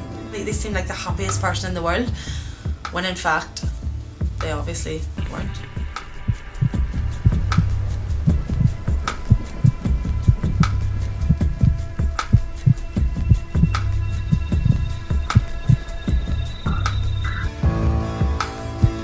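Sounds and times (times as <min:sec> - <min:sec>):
steady low hum: 0:03.9 - 0:17.6
heartbeat-like thumps: 0:05.2 - 0:17.8, 0:18.8 - 0:19.0.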